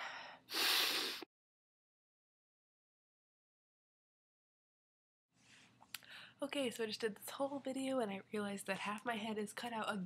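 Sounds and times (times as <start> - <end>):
person breathing heavily: 0.0 - 1.2.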